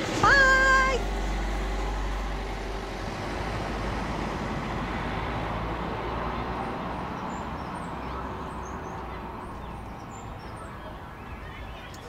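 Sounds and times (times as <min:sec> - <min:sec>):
small birds chirping: 0:06.7 - 0:12.0.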